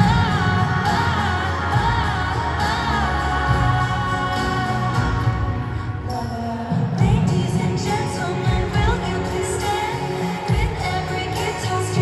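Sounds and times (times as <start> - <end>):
woman singing pop ballad with band: 0.0 - 12.0.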